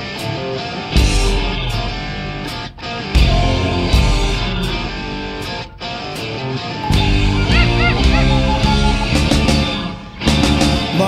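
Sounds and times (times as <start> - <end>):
bass guitar: 0.0 - 11.0
drums: 0.0 - 11.0
electric guitar: 0.0 - 11.0
short high squeals: 6.8 - 10.0.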